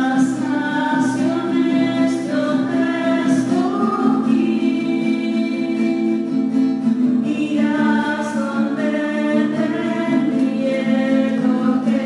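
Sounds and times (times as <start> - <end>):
voices singing a slow hymn: 0.0 - 12.0.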